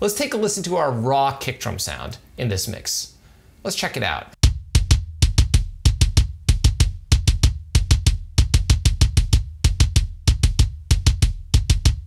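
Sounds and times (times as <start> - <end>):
kick drum double-kick runs: 4.4 - 12.0.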